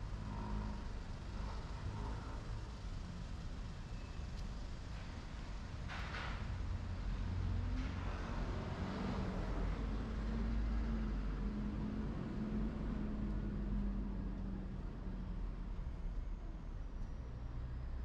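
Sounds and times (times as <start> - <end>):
engine running close by: 0.0 - 4.2, 5.4 - 16.5
traffic rumble: 0.0 - 18.0.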